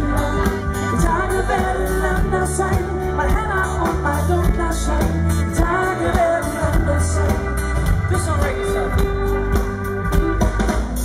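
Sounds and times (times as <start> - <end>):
man singing: 0.0 - 9.7
live pop-rock band: 0.0 - 11.0.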